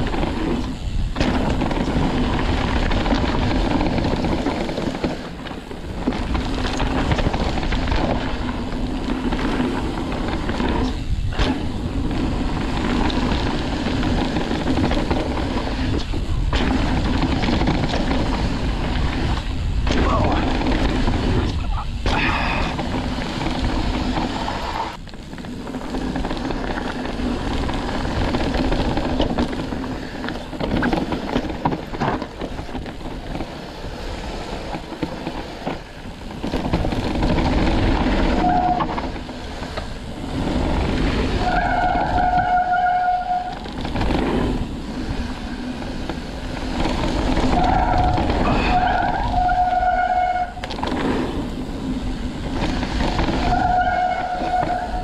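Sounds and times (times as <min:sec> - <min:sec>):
bike rattling rumble: 0:00.0 - 0:55.0
high-pitched brake squeals: 0:38.3 - 0:38.9, 0:41.4 - 0:43.6, 0:47.5 - 0:50.6, 0:53.4 - 0:55.0.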